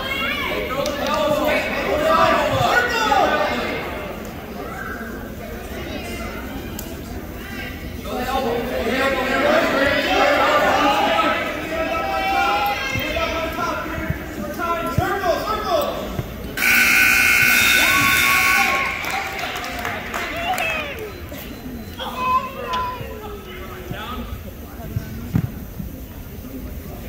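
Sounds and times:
scoreboard buzzer tone: 0:16.6 - 0:18.9
spectators calling out: 0:16.6 - 0:23.2.

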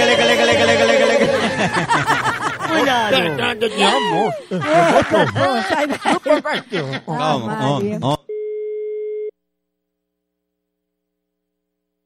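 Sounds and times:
telephone line beep: 0:08.3 - 0:09.3.

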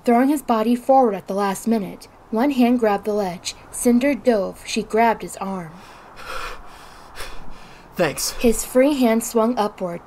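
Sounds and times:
person breathing with effort: 0:05.7 - 0:08.5.

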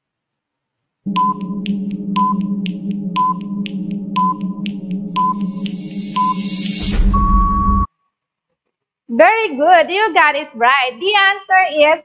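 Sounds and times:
buzzing burst: 0:01.1 - 0:07.9
low drone: 0:01.1 - 0:07.9
short beeps: 0:01.1 - 0:07.9
timer ticks: 0:01.1 - 0:07.9.

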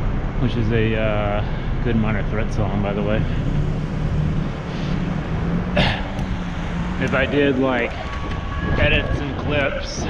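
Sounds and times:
cars in traffic: 0:00.0 - 0:10.0
wind rumbling on microphone: 0:03.3 - 0:10.0.

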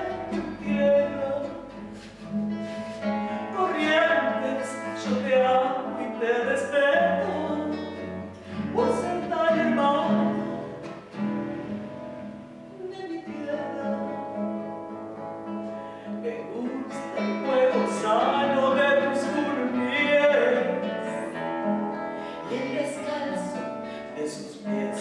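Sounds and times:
classical guitar playing: 0:00.0 - 0:25.0.

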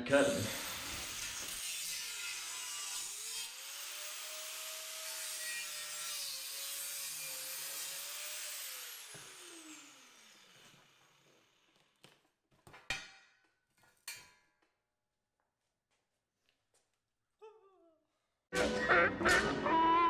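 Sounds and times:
angle grinder cutting steel: 0:00.1 - 0:11.7
grinder spinning down: 0:07.0 - 0:11.7.

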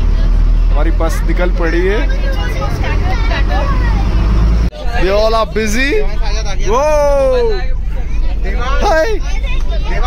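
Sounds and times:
bus engine rumble and road noise: 0:00.0 - 0:10.0
voices chattering: 0:00.0 - 0:10.0.

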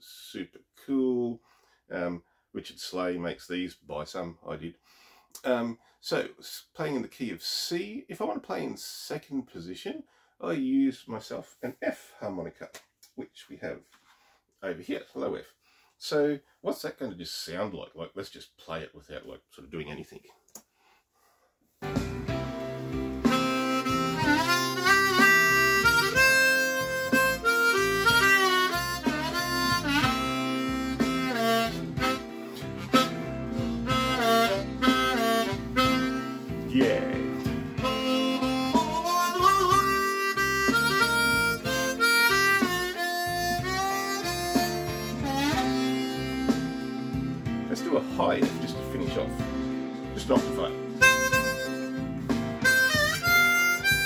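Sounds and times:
blues backing track: 0:21.8 - 0:54.0
harmonica blues licks: 0:21.8 - 0:54.0.

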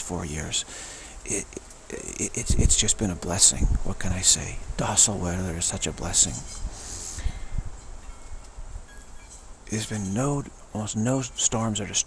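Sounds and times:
wind rumbling on microphone: 0:01.2 - 0:10.3
faint high ringing tones: 0:07.8 - 0:10.5.

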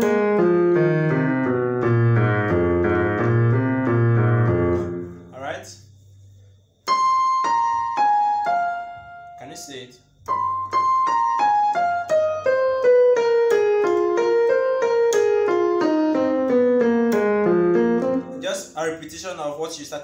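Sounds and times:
electronic keyboard piano run: 0:00.0 - 0:05.6, 0:06.8 - 0:19.0.

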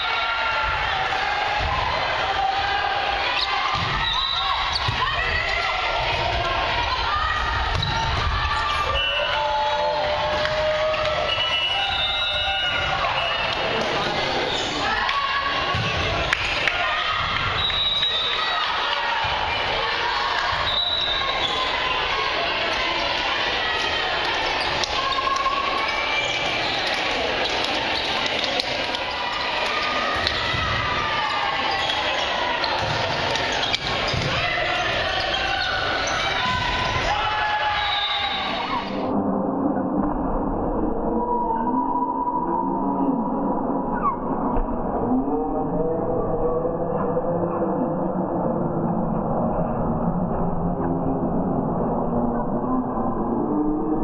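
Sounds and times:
many voices calling: 0:00.0 - 0:40.3
volleyball hits and bounces: 0:03.7 - 0:05.4, 0:07.6 - 0:08.4, 0:29.6 - 0:35.0
sneakers squeaking on hardwood: 0:31.8 - 0:36.6.

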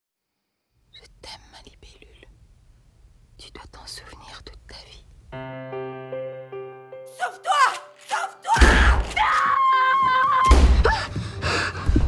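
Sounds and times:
person whispering: 0:00.9 - 0:02.4, 0:03.4 - 0:05.1.

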